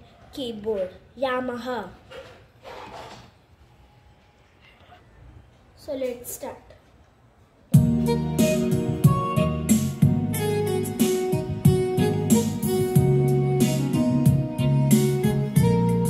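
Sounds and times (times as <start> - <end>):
drum beat: 7.8 - 8.0, 8.7 - 9.4
keyboard melody: 7.8 - 16.0.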